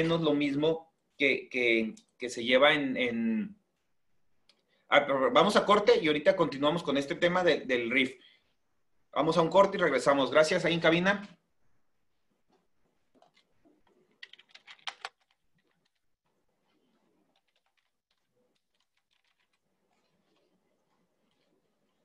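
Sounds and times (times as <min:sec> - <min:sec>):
keyboard typing clicks: 0:14.1 - 0:16.0.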